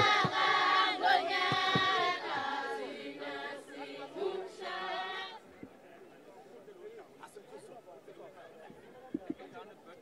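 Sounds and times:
group singing a chant: 0.0 - 5.4
faint crowd murmur: 1.6 - 10.0.

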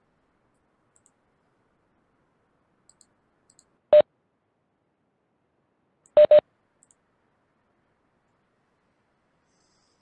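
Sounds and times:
short electronic beeps: 6.2 - 6.4.

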